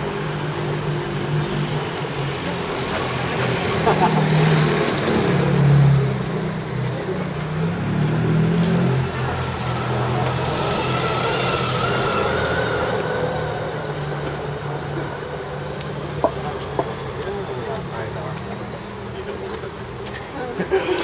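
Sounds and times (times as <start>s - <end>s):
road noise hum: 0.0s - 21.0s
car engine pulling away: 2.4s - 17.2s.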